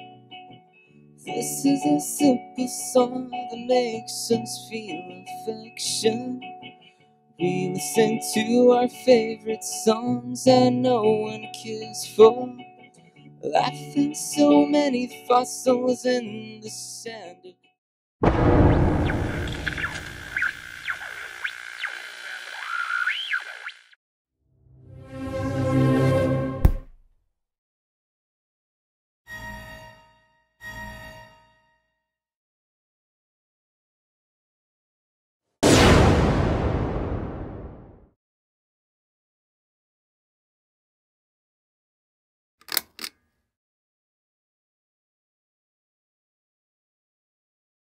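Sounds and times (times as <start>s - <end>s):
heavy low hit: 18.2s - 20.0s, 35.6s - 38.0s
whistle-like gliding tones: 19.0s - 24.0s.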